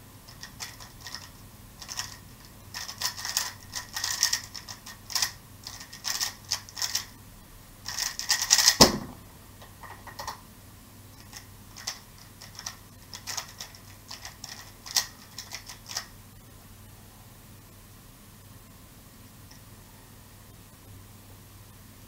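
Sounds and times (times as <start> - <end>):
plastic puzzle cube clicking: 0.3 - 2.2, 2.8 - 7.1, 7.9 - 8.9, 11.2 - 16.1
loud knock: 8.8 - 9.2.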